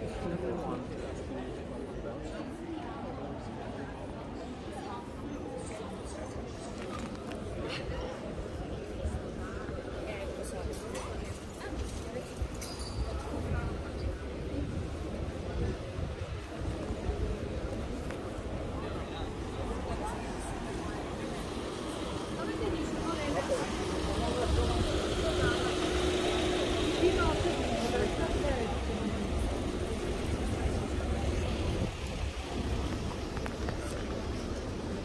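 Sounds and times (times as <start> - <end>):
passers-by talking: 0.0 - 35.0
low rumble of square: 6.7 - 35.0.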